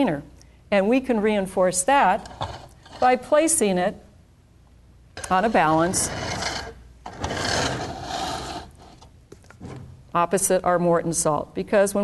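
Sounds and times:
plastic balance pans scraping: 0:05.2 - 0:09.9.

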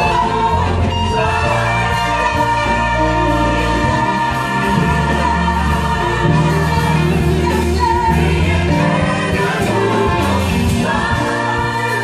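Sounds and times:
gospel group singing: 0:00.0 - 0:12.0
steady bass: 0:00.0 - 0:12.0.

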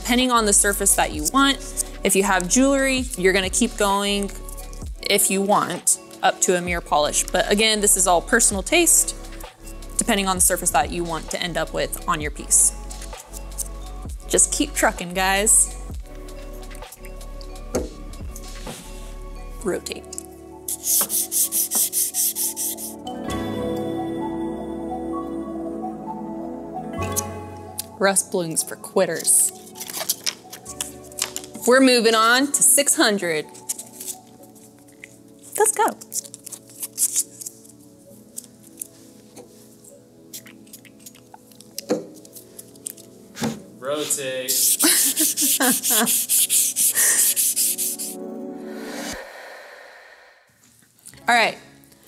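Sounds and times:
sandpaper scrubbing metal: 0:20.7 - 0:23.0, 0:44.0 - 0:48.2.

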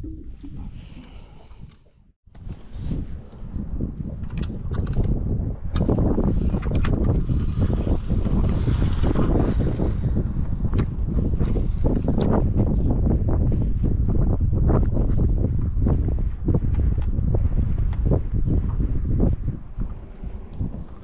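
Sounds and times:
wind buffeting microphone: 0:00.0 - 0:21.0
clicks of fishing rod and reel: 0:04.2 - 0:09.2.

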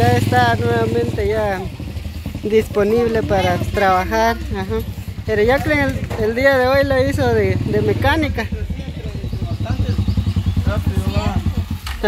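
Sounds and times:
motorcycle engine idling: 0:00.0 - 0:12.0.

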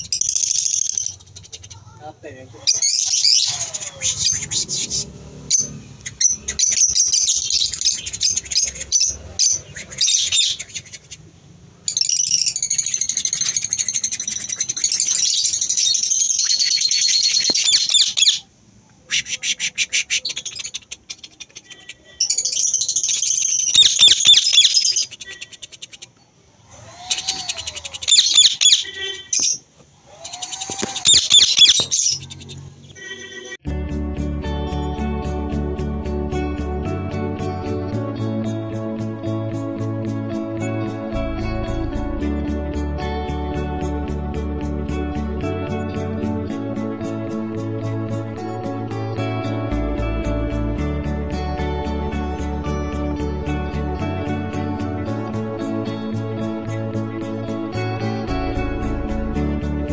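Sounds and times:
birds chattering and squawking: 0:00.0 - 0:11.3, 0:11.9 - 0:33.6.

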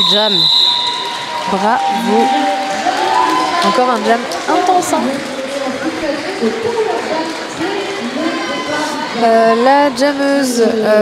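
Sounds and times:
background chatter of voices: 0:01.5 - 0:11.0
commentator speaking: 0:01.6 - 0:02.7.

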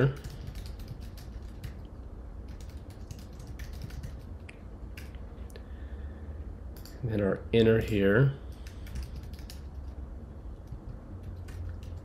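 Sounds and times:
computer keyboard typing: 0:00.0 - 0:05.2, 0:07.7 - 0:10.0, 0:10.6 - 0:12.0.

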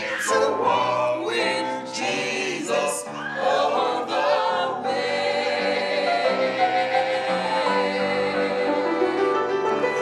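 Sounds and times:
group singing a hymn: 0:00.0 - 0:10.0.

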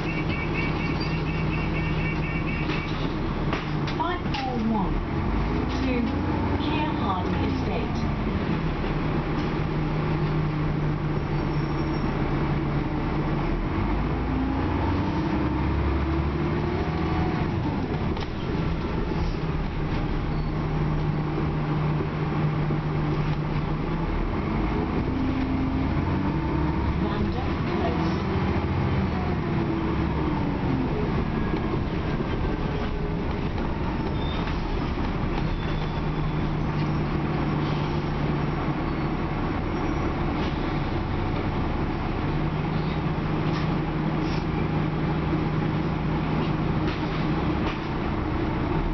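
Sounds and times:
bus diesel engine: 0:00.0 - 0:48.9.

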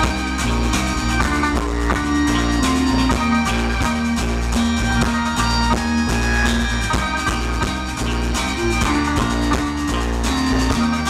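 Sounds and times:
folk-rock band playing: 0:00.0 - 0:11.0.

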